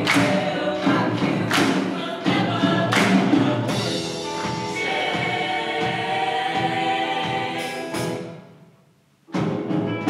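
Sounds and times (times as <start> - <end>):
choir singing a held chord: 0.0 - 8.4.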